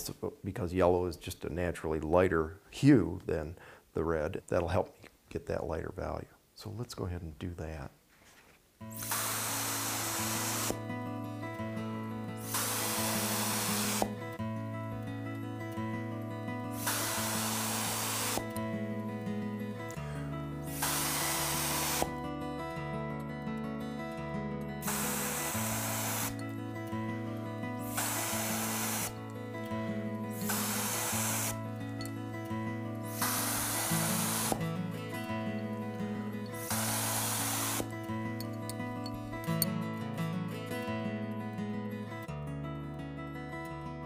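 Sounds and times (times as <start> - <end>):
soft background music: 8.8 - 41.9
atomizer spray hissing: 9.0 - 10.8, 12.4 - 14.3, 16.7 - 18.6, 20.6 - 22.1, 24.8 - 26.5, 27.8 - 29.2, 30.3 - 31.7, 33.0 - 34.7, 36.5 - 37.9.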